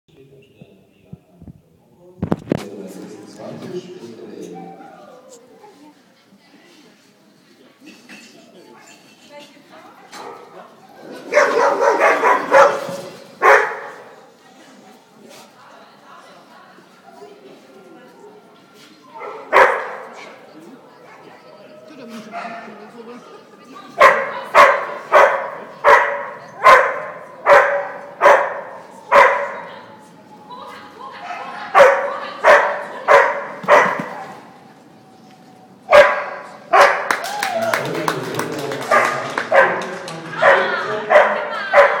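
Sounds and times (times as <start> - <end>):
dog barking loudly: 11.3 - 14.1, 19.2 - 20.1, 24.0 - 29.6, 31.7 - 34.4, 35.9 - 37.1, 38.9 - 39.8, 40.4 - 42.0.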